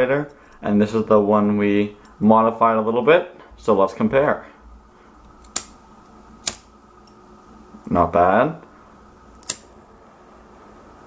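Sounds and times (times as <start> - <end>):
lighter flint wheel click: 9.4 - 9.7.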